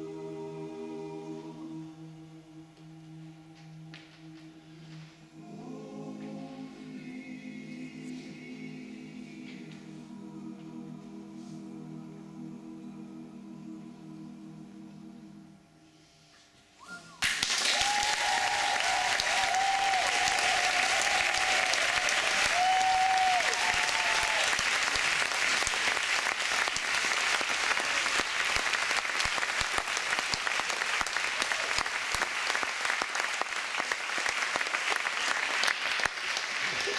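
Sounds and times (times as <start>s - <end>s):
audience applause: 17.2s - 36.9s.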